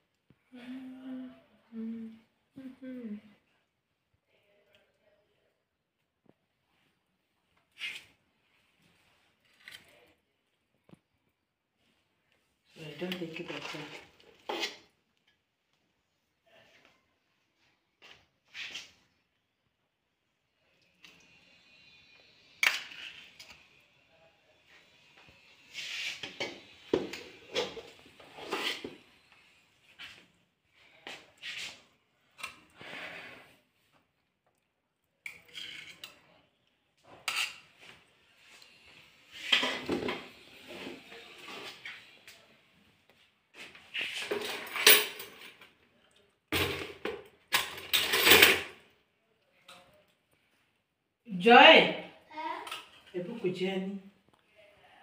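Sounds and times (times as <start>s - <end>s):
metal spoon scraping a metal pot: 13.4s - 14.9s, 25.7s - 29.0s, 35.3s - 36.2s, 37.1s - 37.7s.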